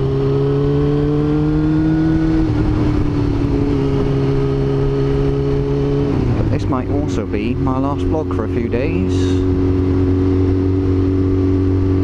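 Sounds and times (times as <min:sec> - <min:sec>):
motorcycle engine cruising: 0:00.0 - 0:12.0
wind and road noise: 0:00.0 - 0:12.0.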